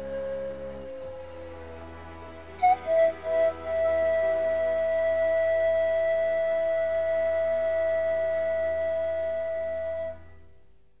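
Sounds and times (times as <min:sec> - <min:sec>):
pan flute music: 0:00.0 - 0:10.6.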